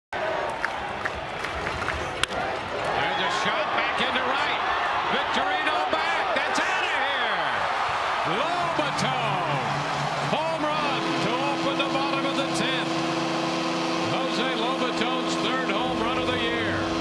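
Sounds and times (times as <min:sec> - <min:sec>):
ballpark crowd noise: 0:00.1 - 0:17.0
crowd cheering and shouting: 0:00.2 - 0:17.0.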